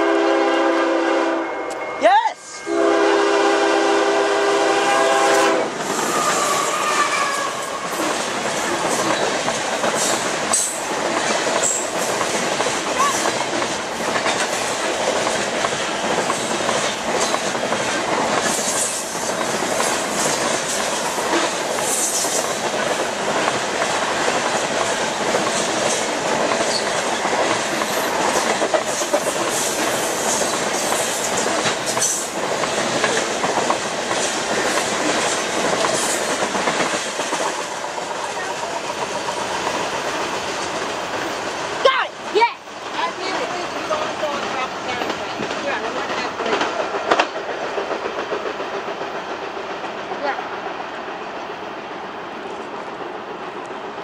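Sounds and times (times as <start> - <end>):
train wheels rumbling and clattering: 2.8 - 54.0
high wheel squeals: 6.0 - 8.0.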